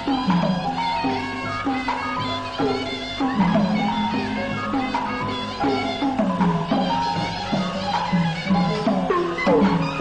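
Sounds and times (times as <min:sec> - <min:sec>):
higher melody: 0:00.0 - 0:10.0
pitched drum strokes: 0:02.6 - 0:10.0.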